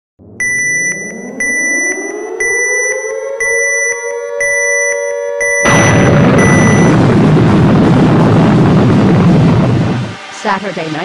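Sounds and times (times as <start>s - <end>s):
synthesizer tone sweeping upward: 0.2s - 4.5s
pulsing high electronic tones: 0.2s - 7.1s.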